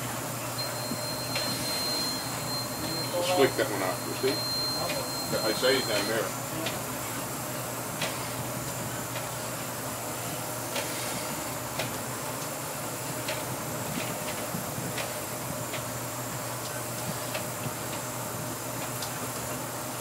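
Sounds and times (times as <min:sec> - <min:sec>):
boat engines droning: 0:00.0 - 0:18.9.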